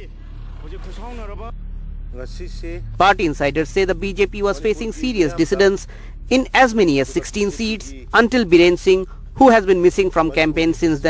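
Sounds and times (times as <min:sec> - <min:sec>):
steady low hum: 0:00.0 - 0:11.0
people's voices: 0:02.2 - 0:11.0.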